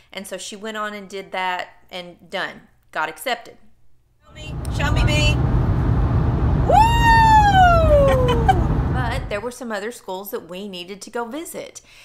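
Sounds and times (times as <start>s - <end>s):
car road noise rumble: 4.3s - 9.4s
woman squealing excitedly: 6.7s - 8.7s.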